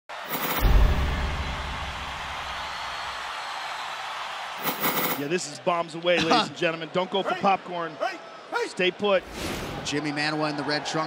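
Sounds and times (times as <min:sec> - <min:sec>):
sharp hit: 0:00.4 - 0:03.1
deep boom: 0:00.6 - 0:03.0.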